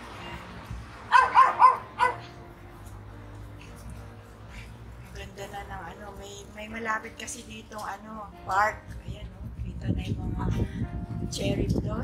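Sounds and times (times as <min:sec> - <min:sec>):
dog barking: 0:01.1 - 0:02.3.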